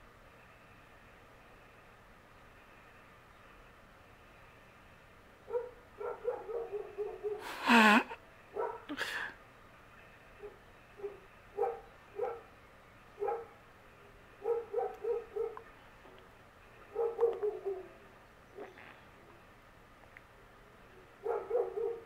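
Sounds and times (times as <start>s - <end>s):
dog barking: 5.5s - 7.5s, 8.5s - 8.9s, 10.4s - 12.5s, 13.2s - 13.6s, 14.4s - 15.7s, 16.9s - 18.0s, 21.2s - 22.0s
person laughing: 7.4s - 8.2s.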